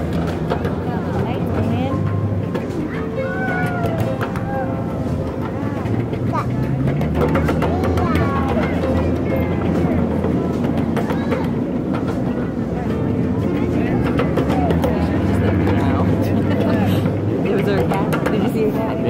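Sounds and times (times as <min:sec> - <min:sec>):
distant voices: 0:00.0 - 0:19.0
faint music: 0:00.0 - 0:19.0
ride-on train rumbling: 0:00.0 - 0:19.0
train cars clattering: 0:00.0 - 0:19.0.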